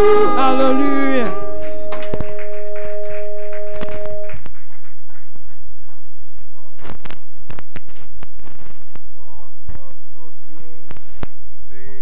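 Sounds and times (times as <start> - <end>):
keyboard chord: 0.0 - 4.5
sharp percussive knocks: 1.1 - 6.0.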